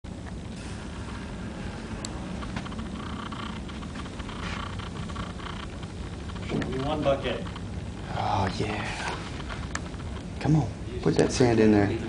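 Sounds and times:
low room hum: 0.1s - 12.0s.

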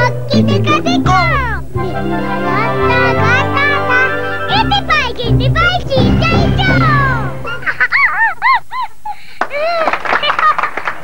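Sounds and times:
falling musical phrase: 1.7s - 7.8s.

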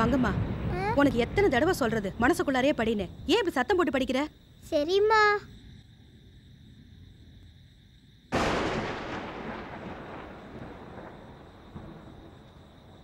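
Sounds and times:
loud boom: 8.4s - 12.2s.

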